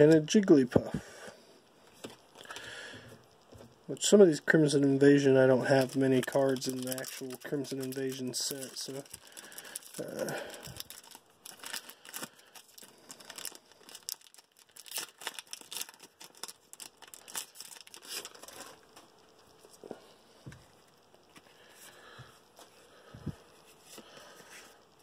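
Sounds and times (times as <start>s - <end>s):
foil wrapper tearing and crinkling: 5.4s - 18.9s
cards being handled: 5.7s - 10.2s.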